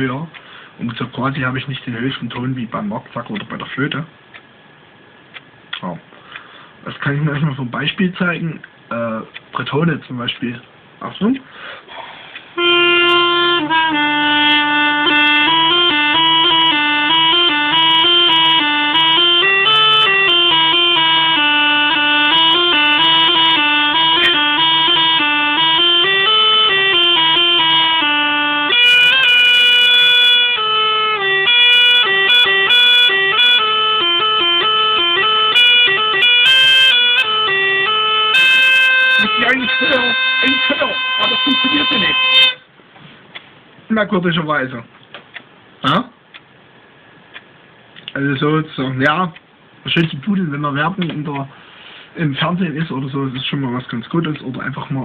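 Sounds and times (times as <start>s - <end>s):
bagpipe melody over drone: 12.6s - 42.7s.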